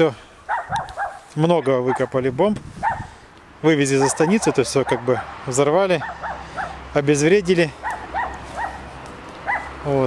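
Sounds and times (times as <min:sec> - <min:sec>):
dog yipping: 0:00.5 - 0:02.1, 0:02.8 - 0:03.1, 0:04.0 - 0:05.3, 0:06.0 - 0:06.8, 0:07.8 - 0:09.8.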